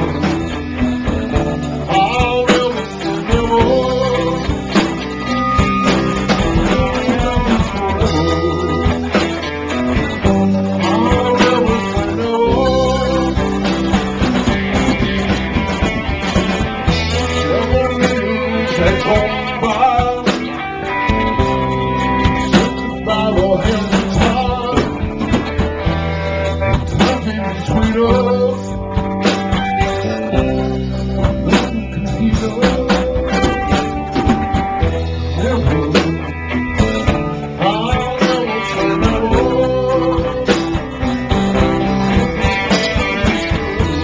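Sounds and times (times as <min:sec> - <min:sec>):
live rock band playing: 0:00.0 - 0:44.0.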